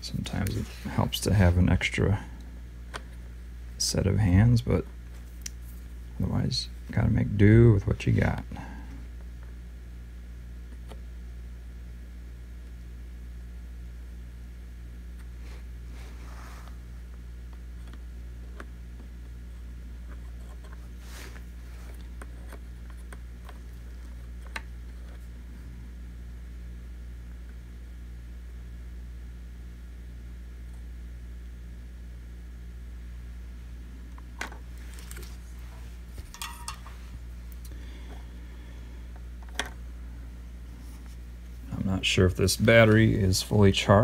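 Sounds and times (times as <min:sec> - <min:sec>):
low electrical hum: 0:00.0 - 0:44.0.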